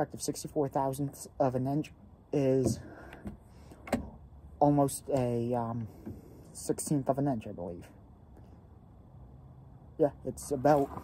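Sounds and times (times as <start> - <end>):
faint low background rumble: 0.0 - 11.0.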